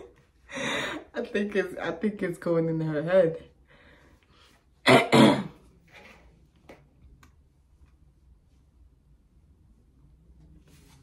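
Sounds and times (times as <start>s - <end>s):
woman coughing: 4.8s - 5.6s.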